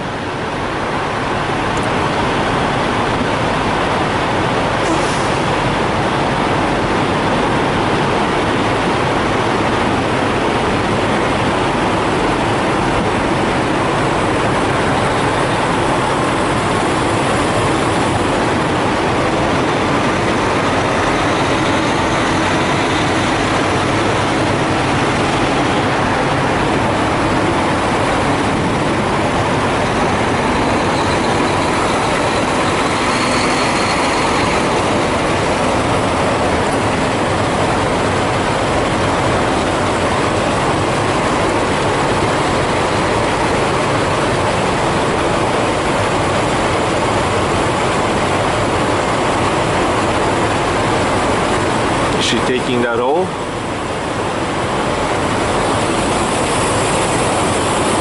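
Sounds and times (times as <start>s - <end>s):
diesel trucks running: 0.0s - 58.0s
truck backing slowly: 0.0s - 58.0s.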